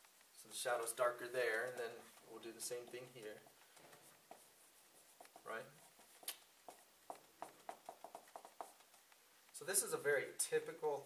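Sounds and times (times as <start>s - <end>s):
pencil strokes on paper: 0.0s - 10.2s.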